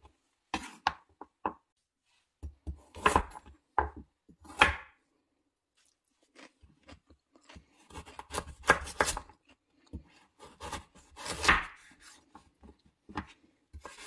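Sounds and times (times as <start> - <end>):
knife cutting carrot on board: 0.5 - 1.6, 2.4 - 5.0, 6.4 - 14.0.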